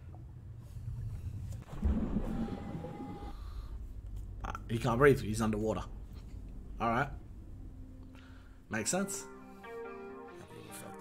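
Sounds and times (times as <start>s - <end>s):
muffled underwater rumble: 0.0s - 8.6s.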